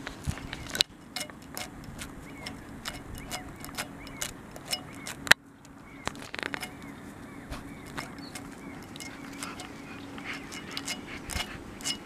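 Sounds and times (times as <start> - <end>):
dog claws scraping asphalt: 0.0 - 12.0.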